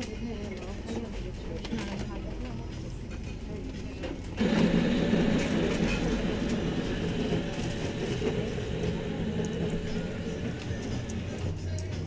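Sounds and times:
coffee machine whirring: 4.4s - 11.8s.

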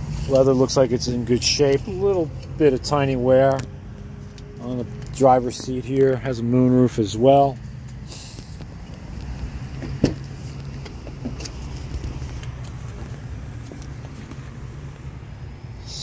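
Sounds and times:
vehicle idling hum: 0.0s - 16.0s.

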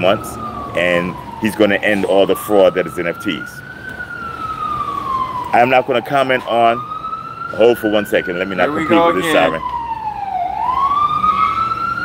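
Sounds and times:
emergency vehicle siren wailing: 0.0s - 12.0s.

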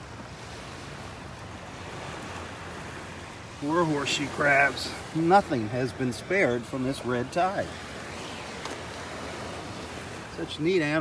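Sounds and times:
surf: 0.0s - 11.0s
wind: 0.0s - 11.0s.

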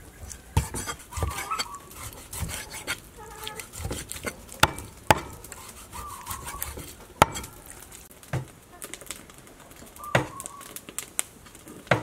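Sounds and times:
knife slicing meat: 0.3s - 7.6s.

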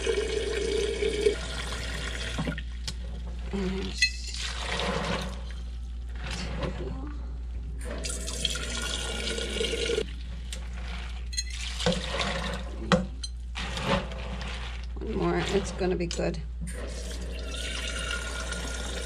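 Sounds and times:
tap water running into pot: 0.0s - 3.0s, 11.5s - 13.0s, 16.9s - 19.0s.

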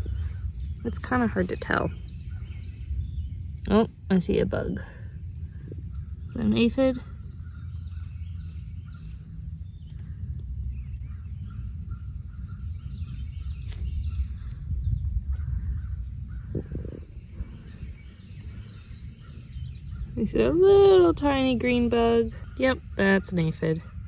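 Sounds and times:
low rumble on microphone: 0.0s - 24.0s
faint bird calls: 5.5s - 20.6s.

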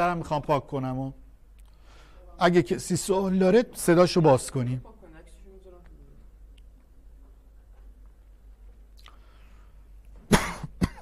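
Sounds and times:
person coughing: 10.3s - 11.0s.

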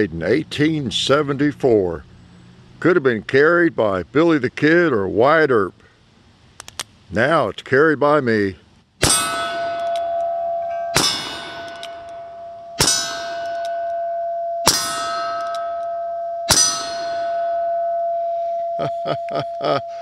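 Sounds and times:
steel targets ringing: 9.0s - 20.0s.

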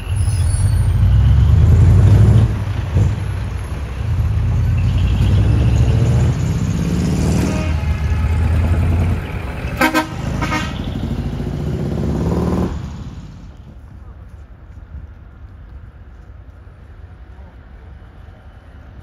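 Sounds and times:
truck engine running: 0.0s - 14.3s
short horn toots: 7.2s - 11.1s.

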